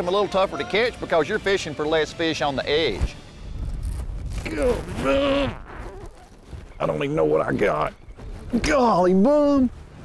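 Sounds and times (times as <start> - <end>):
man talking: 6.8 - 9.7.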